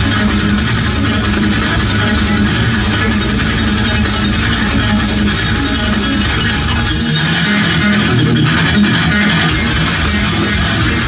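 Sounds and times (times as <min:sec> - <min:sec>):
electric guitar metal riffing: 0:00.0 - 0:11.0.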